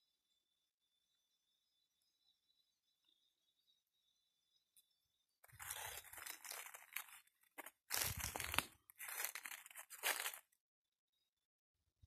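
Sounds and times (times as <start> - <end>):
dry leaves crunching and rustling: 5.5 - 10.4.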